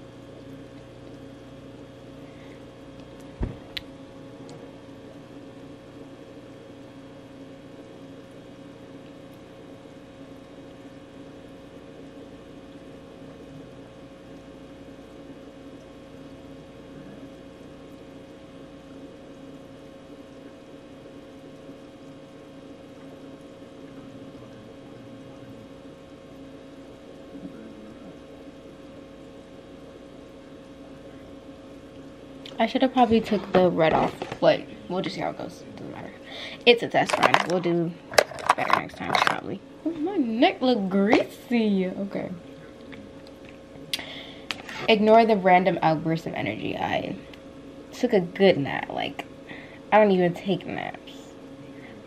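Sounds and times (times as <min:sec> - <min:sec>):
machine hum: 0:00.0 - 0:52.0.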